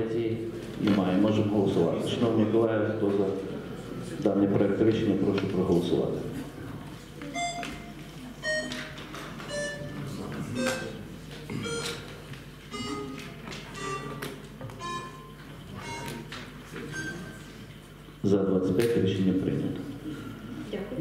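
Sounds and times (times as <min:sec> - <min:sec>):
ringing electronic notes: 0:07.4 - 0:12.1, 0:12.7 - 0:16.3, 0:16.9 - 0:17.5.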